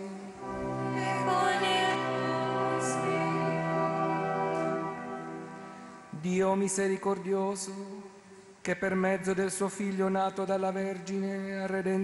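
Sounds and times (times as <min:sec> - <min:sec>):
choir singing held chord: 0:00.3 - 0:06.0.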